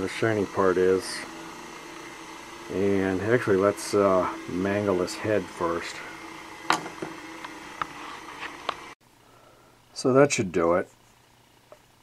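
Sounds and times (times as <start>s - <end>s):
steady shop hum: 0.0s - 10.2s.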